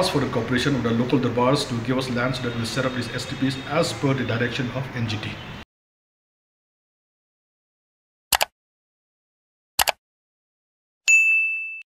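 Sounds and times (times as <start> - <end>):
bell-like notification ding: 11.1 - 11.9.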